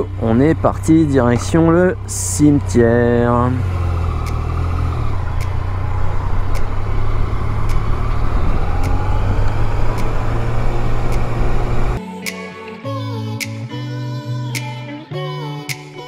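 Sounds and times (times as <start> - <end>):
motorcycle engine running: 0.0 - 12.0
music with acoustic guitar: 12.0 - 16.0.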